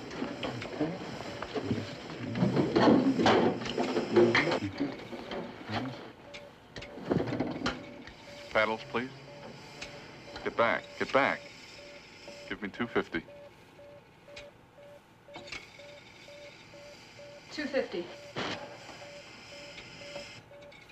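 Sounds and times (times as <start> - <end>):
cardiac monitor beeps: 0.0 - 20.9.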